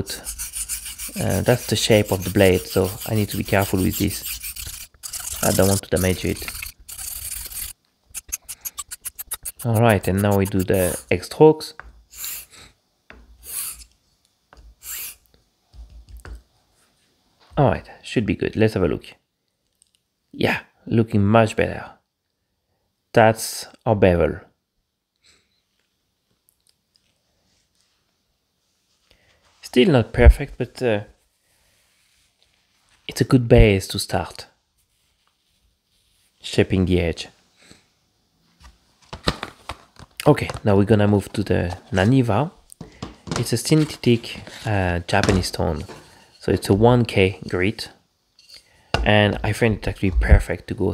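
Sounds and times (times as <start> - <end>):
razor scraping on sharpening plate: 0.0 - 11.1
rustle of handling: 34.8 - 36.4.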